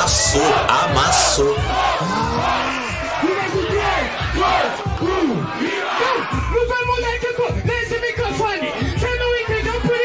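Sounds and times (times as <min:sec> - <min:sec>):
hip-hop beat with bass hits: 0:00.0 - 0:10.0
loud shouting voices: 0:00.0 - 0:10.0.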